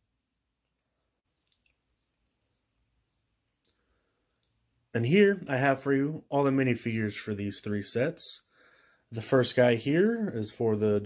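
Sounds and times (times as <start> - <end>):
faint clicks: 0.7 - 2.7, 3.6 - 4.6.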